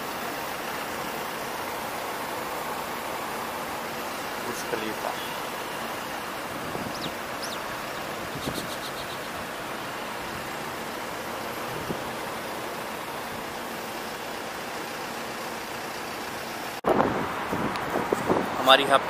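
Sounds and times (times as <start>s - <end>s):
motorcycle wind and road noise: 6.3s - 9.6s, 16.8s - 19.0s.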